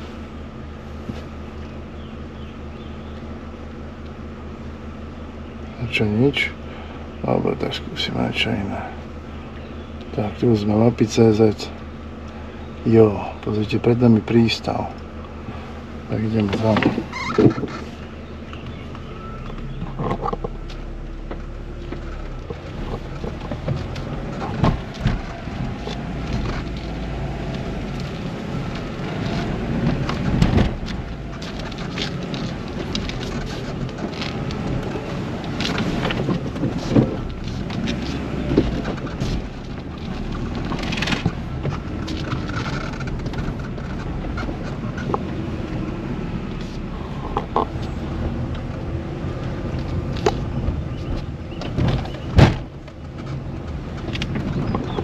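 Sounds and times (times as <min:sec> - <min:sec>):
car cabin low rumble: 0:00.0 - 0:55.0
knocks and rattles over bumps: 0:12.9 - 0:55.0.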